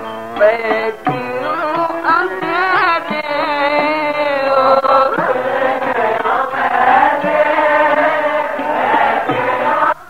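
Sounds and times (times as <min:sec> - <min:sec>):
harmonium: 0:00.0 - 0:10.0
people singing a hymn: 0:04.8 - 0:10.0.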